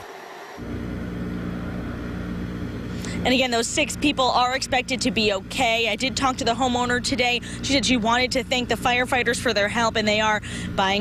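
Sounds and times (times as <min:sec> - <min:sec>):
engine idling: 0:00.6 - 0:11.0.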